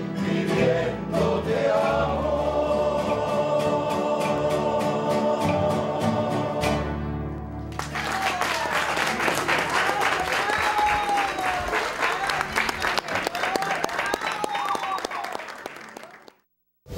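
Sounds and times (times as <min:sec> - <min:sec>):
audience clapping: 0:07.6 - 0:16.5.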